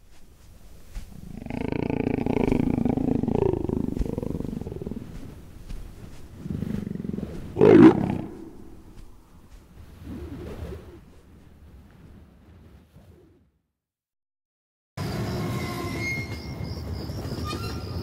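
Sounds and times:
leopard growling and snarling: 0.8 - 11.2.

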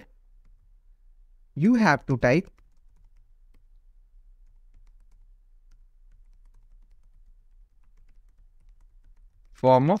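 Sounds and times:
typing on computer keyboard: 2.3 - 3.8, 4.4 - 9.6.

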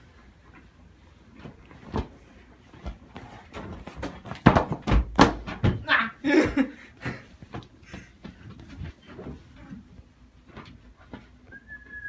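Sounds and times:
thumps on inflatable beach ball: 3.8 - 5.9.

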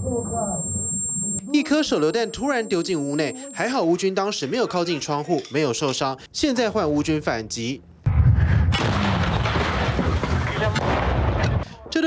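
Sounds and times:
sustained gunfire: 8.1 - 11.6.

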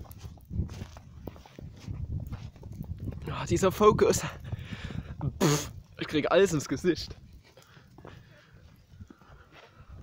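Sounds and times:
footsteps on snow: 0.0 - 3.3.

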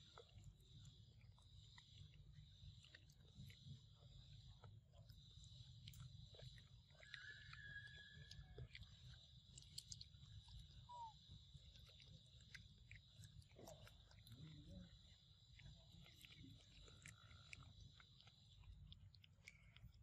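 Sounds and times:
monkey chewing and lip-smacking: 0.0 - 20.0.

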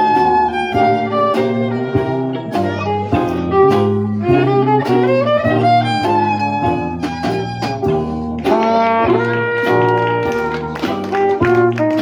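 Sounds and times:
drums beat: 0.0 - 12.0
saxophone and brass melody: 0.0 - 12.0
strummed banjo: 0.0 - 12.0.

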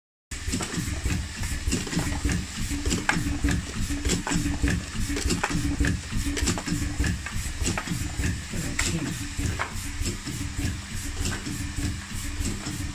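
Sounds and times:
machinery clicks and clatter: 0.4 - 12.9
factory machinery rumbling: 0.9 - 12.9.

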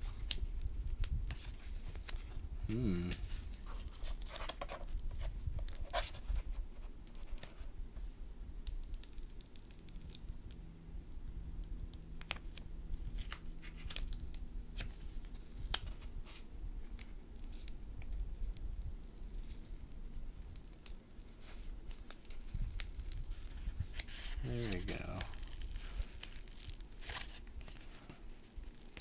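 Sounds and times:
paper rustling and crackling: 0.0 - 10.6, 11.8 - 29.0.

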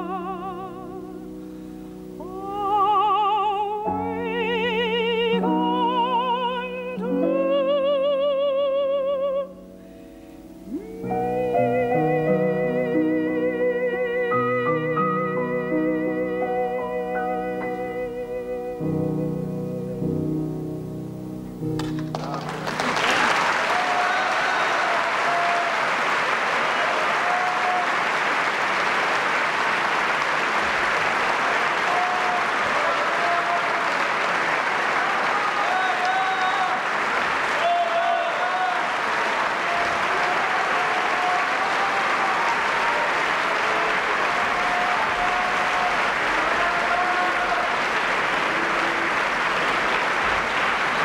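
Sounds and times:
audience applauding: 21.8 - 51.0
crowd shouts: 23.0 - 28.3, 31.3 - 49.8.

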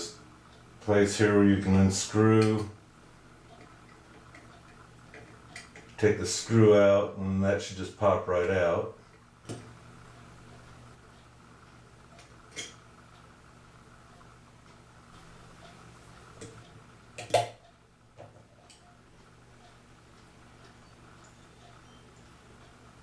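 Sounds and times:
faint steady hum: 0.0 - 23.0
clicks and taps of metal parts: 12.2 - 12.8, 17.2 - 17.6.

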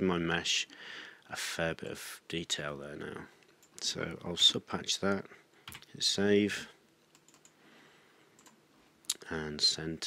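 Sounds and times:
computer keyboard typing: 7.1 - 7.6, 8.4 - 8.6.

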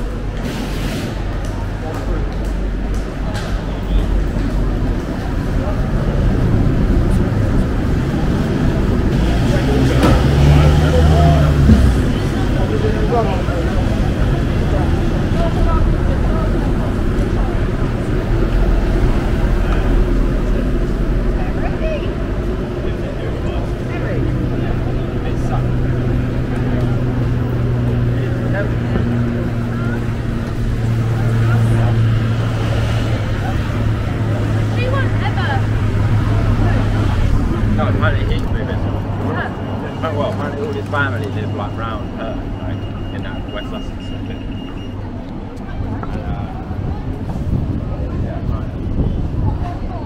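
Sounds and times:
low engine hum: 0.0 - 50.0
people talking: 0.0 - 50.0
vehicles passing: 0.0 - 50.0.

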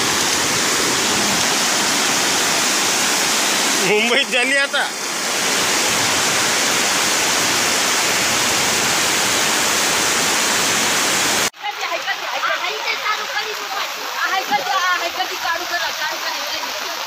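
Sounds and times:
floodwater rushing: 0.0 - 17.0
running water: 0.0 - 17.0.

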